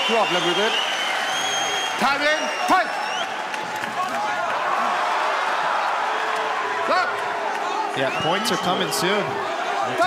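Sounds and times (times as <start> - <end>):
crowd shouts: 0.0 - 10.0.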